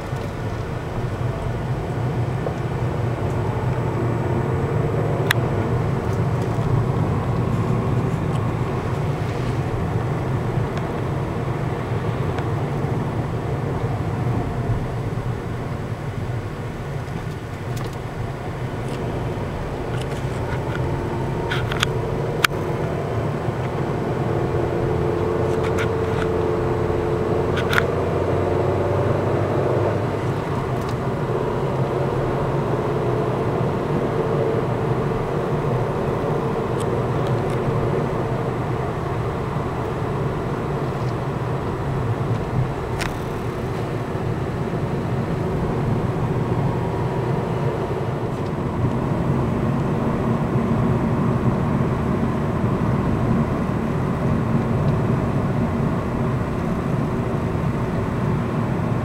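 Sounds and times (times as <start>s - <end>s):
engine hum: 0.0s - 59.0s
road noise inside car: 0.0s - 59.0s.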